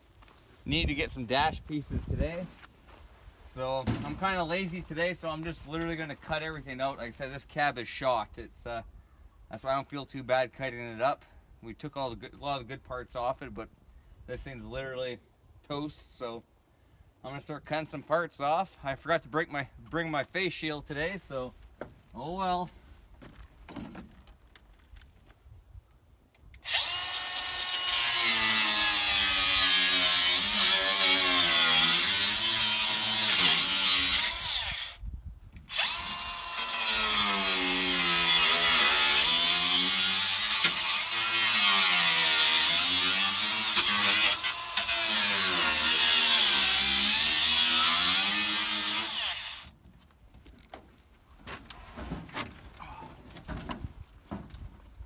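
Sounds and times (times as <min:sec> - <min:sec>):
angle grinder cutting sheet metal: 0:26.6 - 0:35.0, 0:35.7 - 0:49.6.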